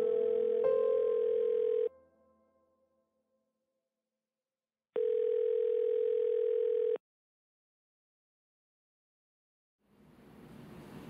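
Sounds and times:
steady telephone tone: 0.0 - 2.0, 5.0 - 7.0.

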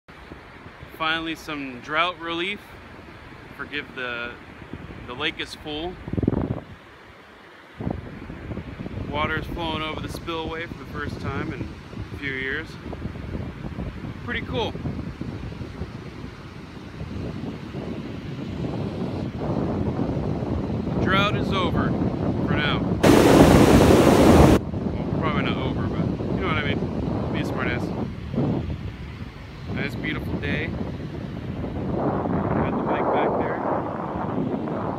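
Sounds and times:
wind buffeting microphone: 4.4 - 6.9, 7.8 - 34.9
water rushing down rapids: 23.0 - 24.6.

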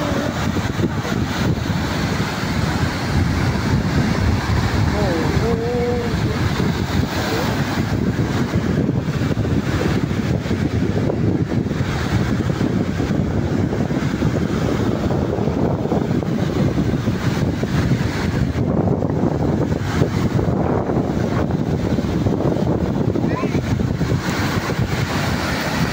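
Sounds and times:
small waves breaking on beach: 0.0 - 25.9
wind buffeting microphone: 0.0 - 25.9.

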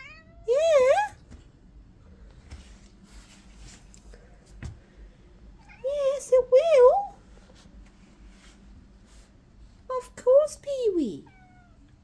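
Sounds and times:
cat meowing: 0.0 - 0.5, 11.2 - 11.9.

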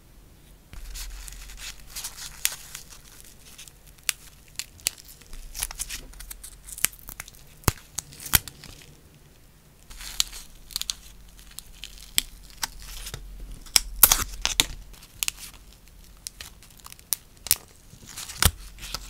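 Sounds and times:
nail wipe crinkling: 0.8 - 19.0.

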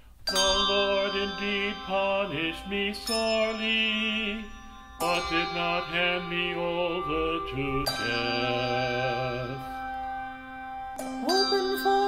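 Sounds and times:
chanted psalm singing: 0.0 - 12.0
sustained accompaniment chords: 0.0 - 12.0.

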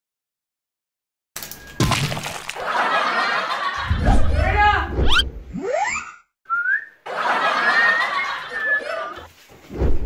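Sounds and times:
short upward whistle: 5.1 - 6.9
wavering whistled note: 6.5 - 6.9.

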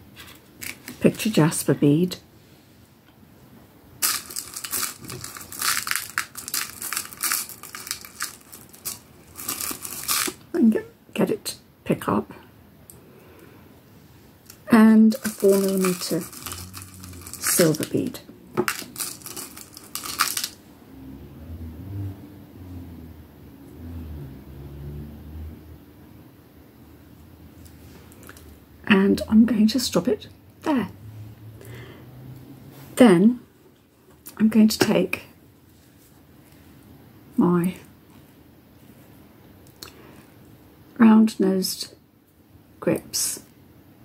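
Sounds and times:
plastic packaging crinkling: 0.2 - 1.2, 4.0 - 10.5, 14.5 - 20.6
low hum changing pitch: 20.7 - 25.8.

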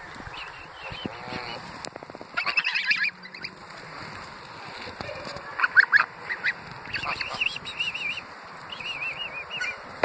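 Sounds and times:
geese cackling: 0.0 - 10.0
geese honking: 0.3 - 10.0.

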